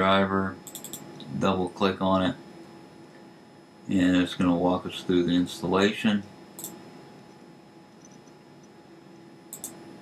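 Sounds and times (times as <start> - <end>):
computer mouse clicks: 0.7 - 1.0, 6.6 - 6.8, 9.5 - 9.8.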